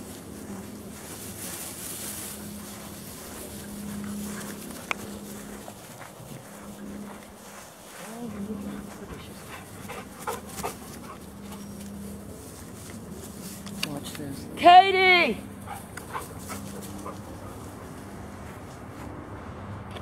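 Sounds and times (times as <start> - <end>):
dogs moving on dirt trail: 0.0 - 14.5, 15.4 - 19.3.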